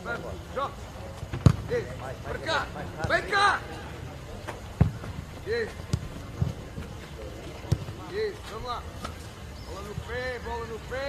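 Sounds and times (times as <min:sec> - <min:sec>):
football being kicked: 0:01.2 - 0:01.9, 0:04.7 - 0:06.9, 0:07.6 - 0:08.0.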